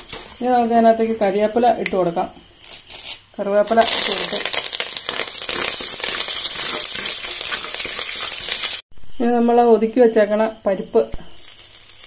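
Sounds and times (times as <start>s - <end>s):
seeds sizzling in hot oil: 0.0s - 12.0s.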